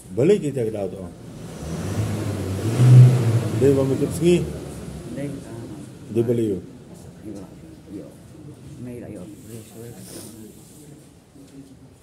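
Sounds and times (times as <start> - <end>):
vehicle engine running: 1.0 - 8.3.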